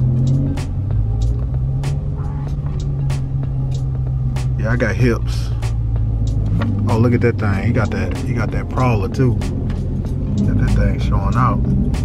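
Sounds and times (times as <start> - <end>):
car engine low drone: 0.0 - 12.0
music playing: 0.0 - 12.0.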